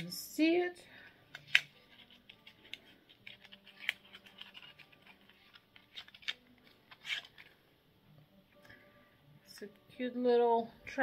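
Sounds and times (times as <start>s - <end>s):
packaging snaps: 1.3s - 7.5s
packaging crinkling and crackling: 1.4s - 7.6s.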